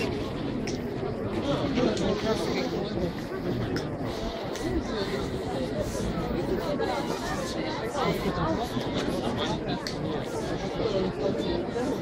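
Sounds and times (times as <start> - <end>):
crowd chattering: 0.0 - 12.0.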